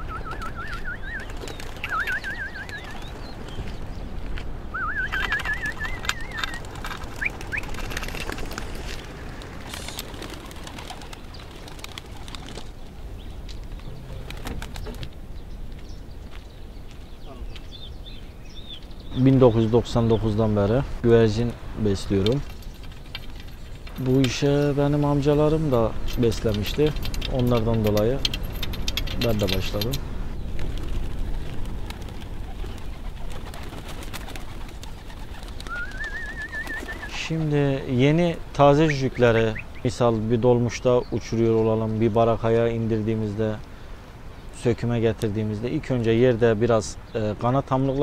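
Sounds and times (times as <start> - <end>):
warbling whistle: 0.0 - 3.0, 4.7 - 6.6, 35.7 - 37.1
pigeon wing flaps: 0.0 - 3.8, 4.8 - 13.0, 13.7 - 15.1, 22.3 - 24.1, 26.4 - 37.5.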